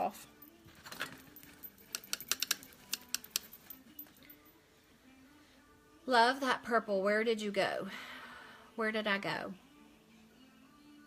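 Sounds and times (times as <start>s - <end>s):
makeup tools clicking and tapping: 1.8s - 3.7s.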